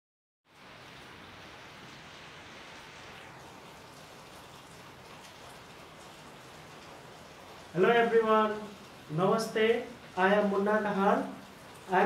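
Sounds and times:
steady background hiss: 0.6s - 12.0s.

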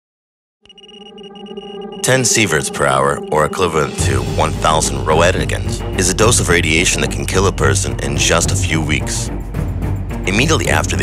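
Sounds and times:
high-pitched electronic tone: 0.6s - 4.2s
low drone: 0.7s - 7.3s.

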